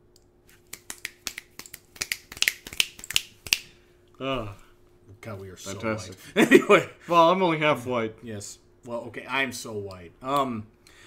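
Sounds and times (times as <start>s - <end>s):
faint steady hum: 0.0s - 11.0s
finger snaps: 0.1s - 3.7s.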